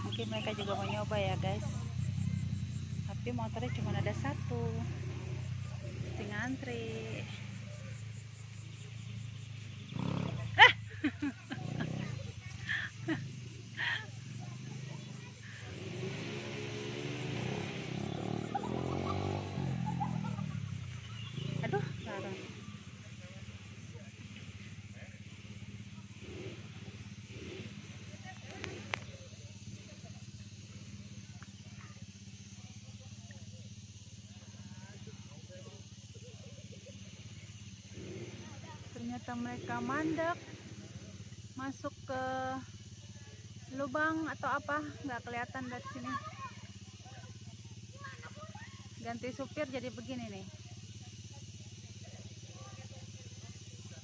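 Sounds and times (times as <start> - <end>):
low motor hum: 0.0 - 37.6.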